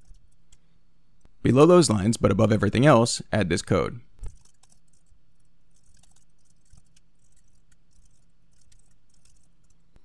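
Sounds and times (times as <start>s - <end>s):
computer keyboard typing: 0.0s - 0.6s, 4.2s - 10.0s
steady low hum: 0.0s - 10.0s.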